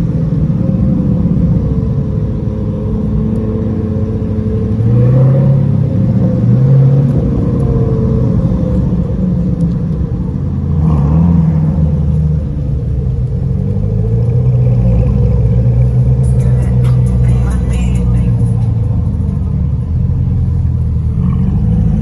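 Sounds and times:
deep exhaust rumble: 0.0 - 22.0.

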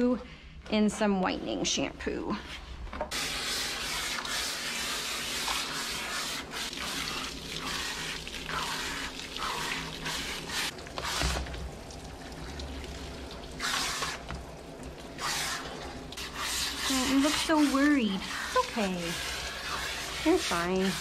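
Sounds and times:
hose nozzle water spraying: 3.1 - 11.6, 13.5 - 14.5, 15.1 - 21.0.

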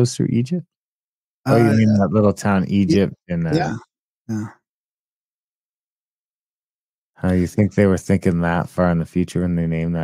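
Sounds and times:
man saying yeah: 1.5 - 3.8.

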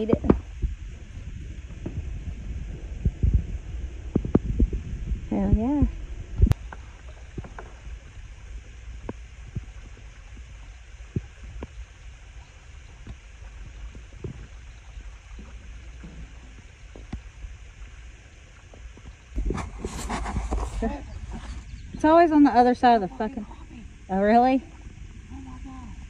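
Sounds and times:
water lapping against kayak hull: 0.0 - 26.0
wind noise on microphone: 0.0 - 26.0.

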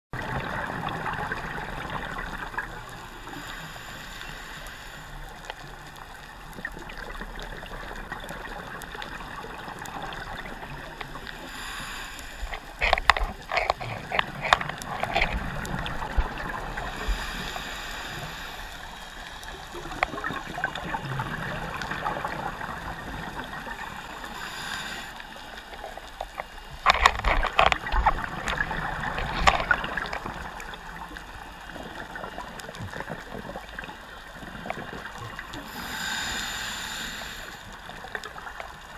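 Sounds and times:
scuba breathing hiss: 3.0 - 5.4, 11.2 - 12.8, 16.6 - 20.0, 23.5 - 25.8, 35.6 - 38.0.

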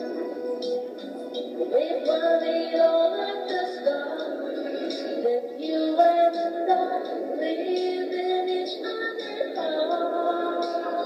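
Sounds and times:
music from a screen: 0.0 - 11.0.

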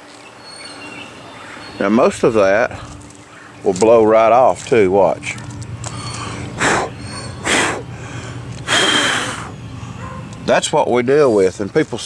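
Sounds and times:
person blowing puffs of breath: 5.9 - 10.0.

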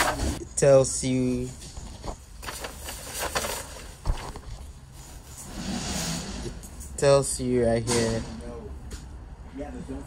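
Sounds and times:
paper sheet rustling: 1.7 - 5.5.

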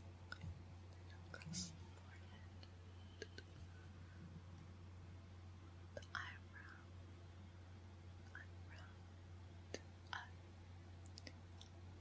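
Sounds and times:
low steady hum: 0.0 - 12.0
close whispers: 0.4 - 3.8, 5.9 - 7.0, 8.2 - 9.0.

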